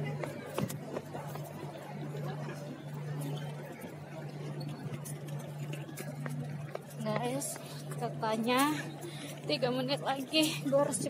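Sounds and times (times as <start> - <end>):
faint distant voices: 0.0 - 11.0
low city hum: 0.0 - 11.0.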